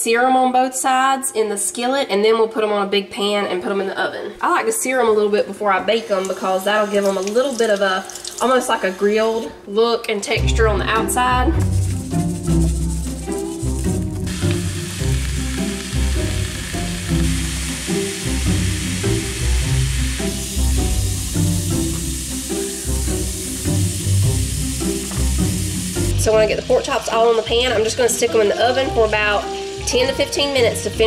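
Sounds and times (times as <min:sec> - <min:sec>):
background music with steady beat: 0:10.4 - 0:31.0
meat sizzling in a skillet: 0:11.7 - 0:31.0.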